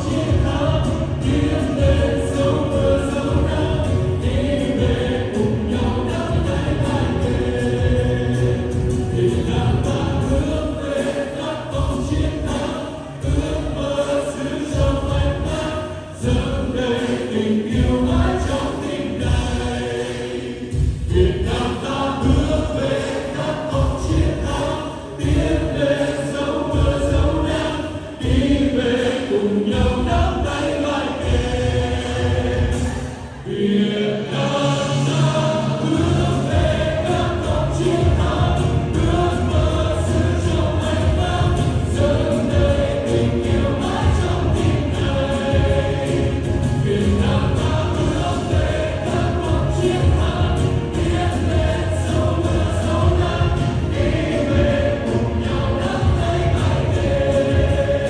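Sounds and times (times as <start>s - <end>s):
pop backing track with beat: 0.0s - 33.4s, 35.7s - 58.0s
man singing lead: 0.0s - 58.0s
women singing in a group: 0.0s - 58.0s.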